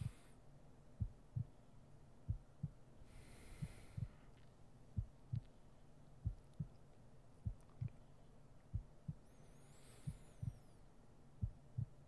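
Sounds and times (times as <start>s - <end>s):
heartbeat thumps: 1.0s - 1.6s, 2.2s - 4.2s, 5.0s - 5.6s, 6.2s - 6.8s, 7.4s - 8.0s, 8.7s - 9.3s, 10.0s - 10.7s, 11.4s - 12.0s.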